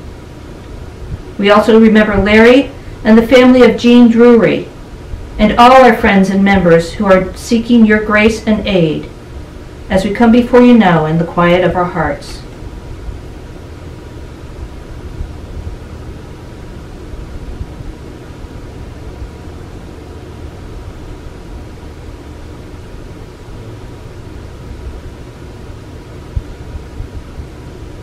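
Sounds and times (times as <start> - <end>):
low hum: 0.0 - 28.0.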